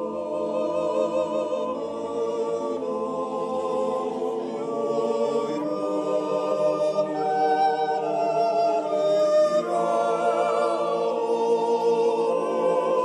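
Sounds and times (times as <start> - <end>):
men's choir singing a cappella: 0.0 - 13.0.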